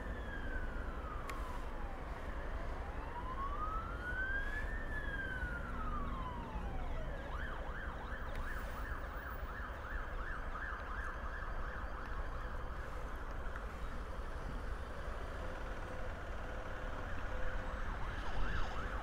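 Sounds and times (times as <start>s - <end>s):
ambulance siren wail and yelp: 0.0s - 19.0s.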